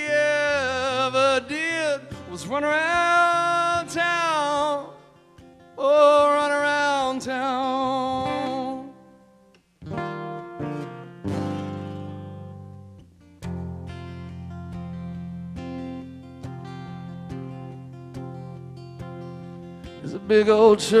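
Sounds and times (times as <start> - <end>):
man singing with vibrato: 0.0 - 9.2, 19.8 - 21.0
acoustic guitar chords strummed: 0.0 - 21.0.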